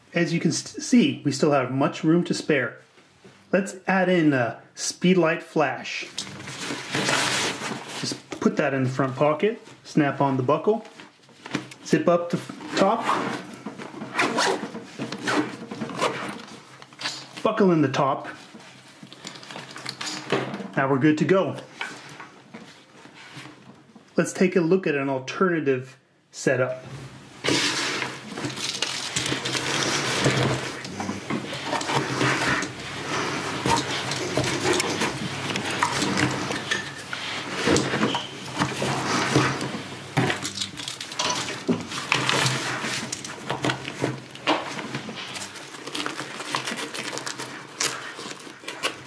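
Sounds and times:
zipper pulled shut: 0:12.6 - 0:16.5.

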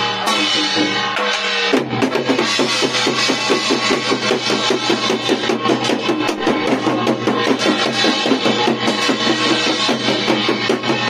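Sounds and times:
fast even drumming: 0:00.3 - 0:11.0.

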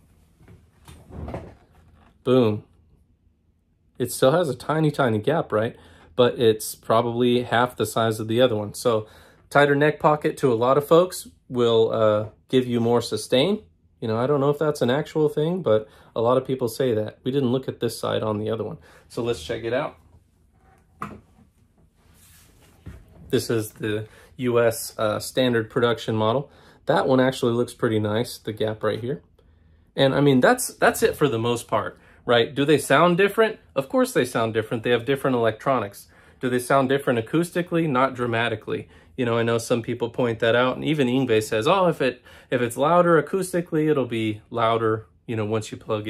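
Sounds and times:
wooden knock: 0:21.0 - 0:21.4.

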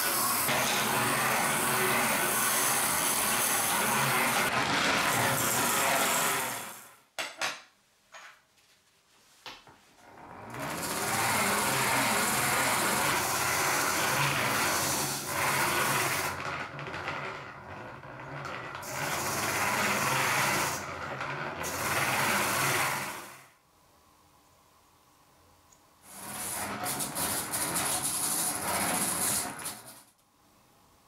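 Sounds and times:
hand-cranked grinder rasping: 0:00.0 - 0:06.8, 0:10.0 - 0:23.4, 0:26.1 - 0:30.1.

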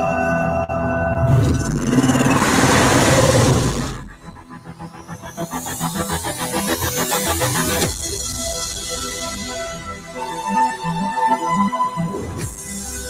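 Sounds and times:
rising synth sweep: 0:00.9 - 0:07.8
loud rushing sound effect: 0:01.1 - 0:04.6.

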